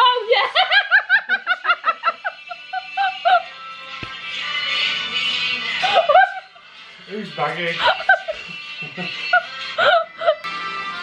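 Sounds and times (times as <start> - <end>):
woman laughing hard: 0.3 - 3.5, 5.8 - 6.6, 7.8 - 10.5.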